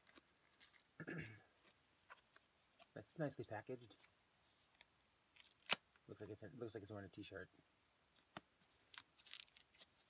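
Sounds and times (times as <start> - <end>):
bubble wrap crinkling: 0.0 - 1.0, 3.9 - 6.1, 8.1 - 10.0
bubble wrap snapping: 0.0 - 1.0, 4.7 - 6.0, 8.1 - 10.0.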